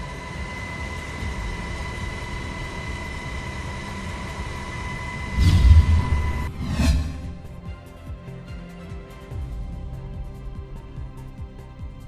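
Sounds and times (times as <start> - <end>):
deep boom: 5.3 - 7.6
low steady rumble: 5.3 - 7.6
whoosh sweeping down: 5.3 - 7.6.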